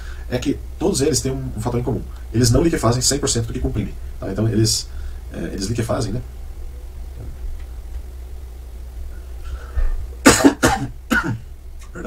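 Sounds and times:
man coughing: 10.2s - 12.0s.

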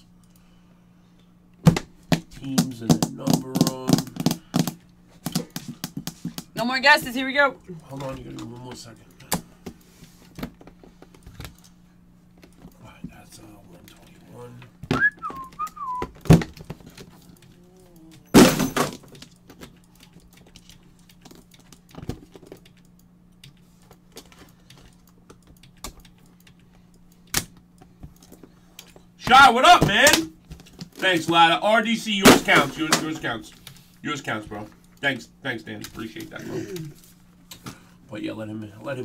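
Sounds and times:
steady low hum: 0.0s - 39.0s
gliding whistle: 15.0s - 16.1s.

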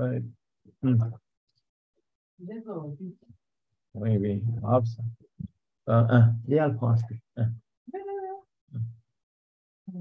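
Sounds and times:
man's voice over video call: 0.0s - 1.2s, 4.0s - 7.6s.

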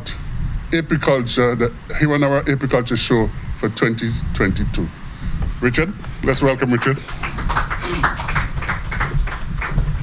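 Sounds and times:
small group applauding: 6.6s - 10.0s.

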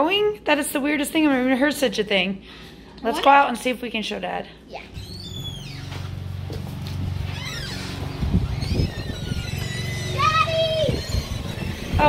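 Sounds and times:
low motor hum: 5.0s - 12.0s.

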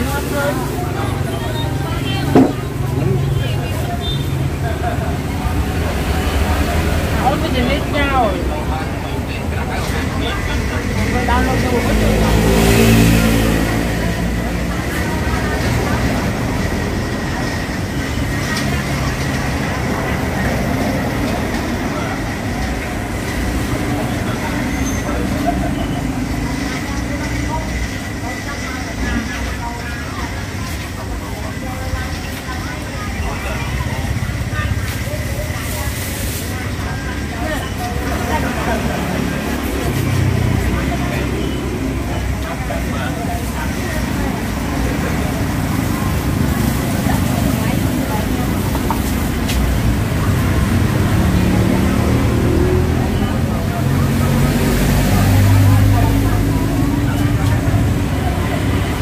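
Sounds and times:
people talking: 0.0s - 59.0s
street traffic rumble: 0.0s - 59.0s.

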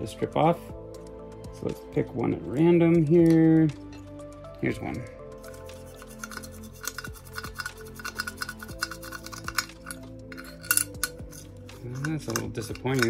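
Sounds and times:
quiet background music: 0.0s - 13.0s
toothbrush scrubbing: 5.4s - 13.0s
small metal clinks: 7.0s - 13.0s.

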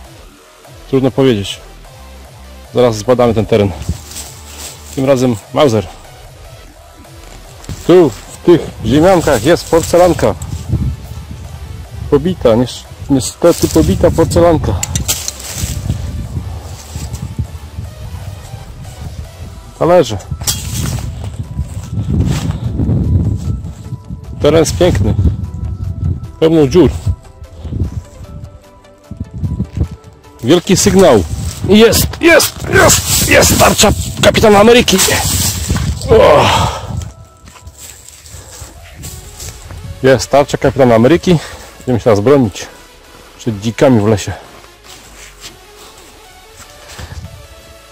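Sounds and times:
hands rustling dry leaves: 3.0s - 11.9s, 12.5s - 19.8s, 29.6s - 47.2s
sharp clicks: 14.8s - 15.4s
low microphone rumble: 15.4s - 24.4s.

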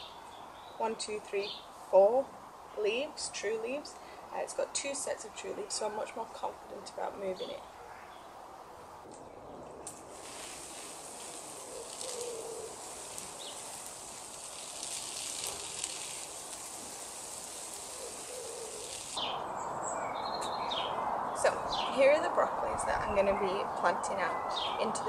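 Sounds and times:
hose spray hissing: 10.0s - 19.2s
bird cooing: 11.4s - 13.6s, 17.8s - 19.1s.

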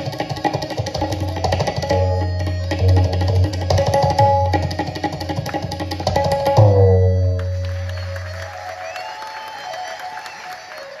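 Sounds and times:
harmonium held notes: 0.0s - 9.4s
audience applause: 7.5s - 11.0s.

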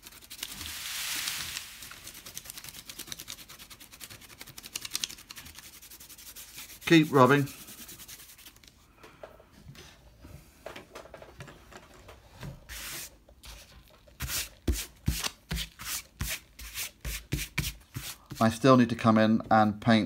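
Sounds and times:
fingers rubbing paper: 1.8s - 8.6s.

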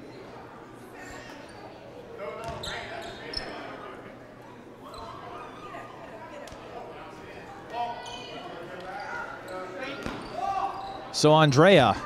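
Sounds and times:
basketball bouncing on court: 2.4s - 2.6s.

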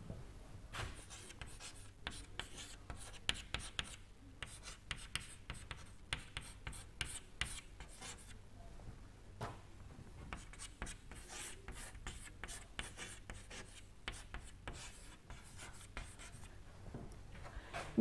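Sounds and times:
chalk tapping and scratching: 0.8s - 8.4s, 10.3s - 16.5s.

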